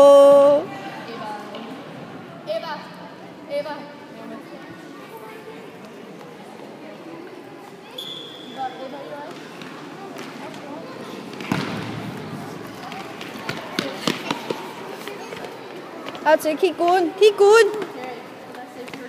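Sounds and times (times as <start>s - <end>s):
spectators chattering: 0.0s - 19.0s
ball knocks bouncing: 11.3s - 12.0s.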